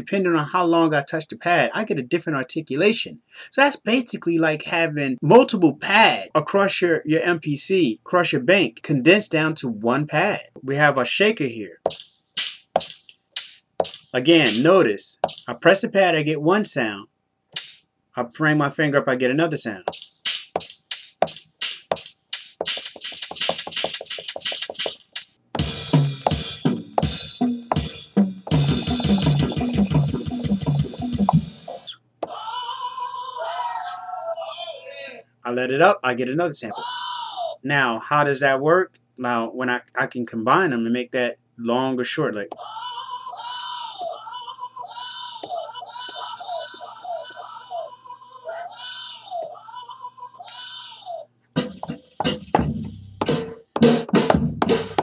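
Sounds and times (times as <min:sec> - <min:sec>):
drum pattern with bass notes: 0:11.8 - 0:15.6, 0:19.8 - 0:32.0, 0:51.6 - 0:55.0
shaker sample hits: 0:11.9 - 0:15.6, 0:19.9 - 0:31.9.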